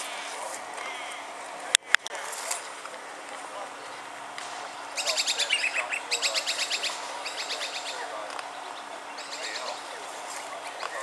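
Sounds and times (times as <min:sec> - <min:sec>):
bird calling rapid notes: 0:04.9 - 0:08.1.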